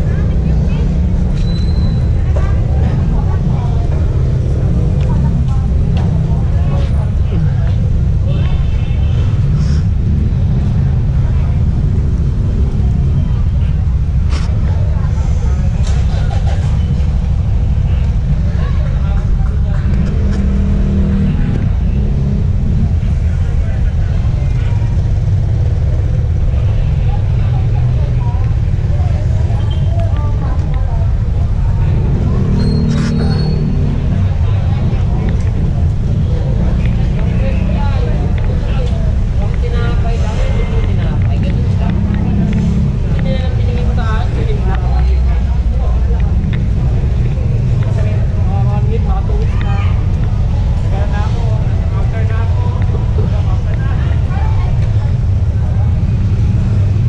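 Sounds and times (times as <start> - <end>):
faint voices: 0.0 - 57.0
traffic on a wet road: 0.0 - 57.0.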